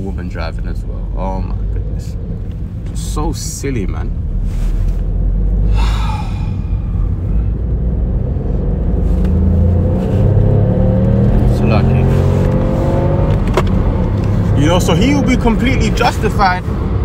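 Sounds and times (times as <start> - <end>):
car engine accelerating: 0.0 - 17.0
road rumble: 0.0 - 17.0.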